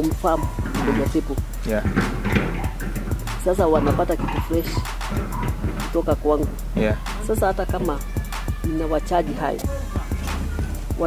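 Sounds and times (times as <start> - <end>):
person speaking: 0.0 - 2.0, 5.7 - 8.1
background music: 0.0 - 11.0.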